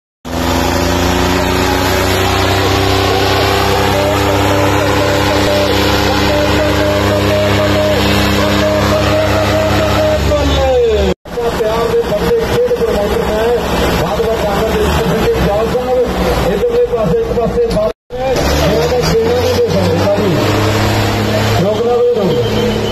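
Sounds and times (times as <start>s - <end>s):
crowd noise: 0.3s - 22.9s
tractor diesel engines roaring: 0.3s - 22.9s.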